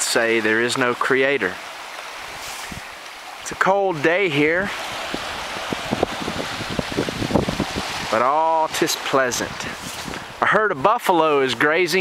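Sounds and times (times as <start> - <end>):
wind buffeting microphone: 2.2 - 3.0, 4.5 - 10.4.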